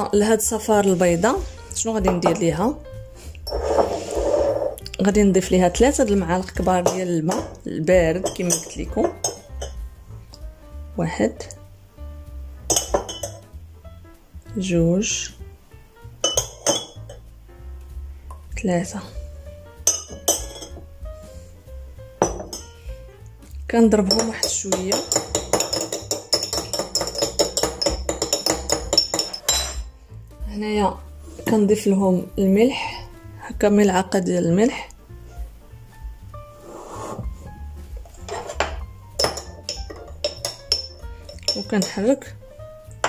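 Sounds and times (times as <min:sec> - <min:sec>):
soft background music: 0:00.0 - 0:43.0
metal spoon clinking on glass: 0:08.2 - 0:09.8, 0:12.7 - 0:13.4, 0:16.2 - 0:17.2, 0:19.9 - 0:20.8, 0:22.2 - 0:22.7, 0:24.1 - 0:29.9, 0:38.2 - 0:42.1.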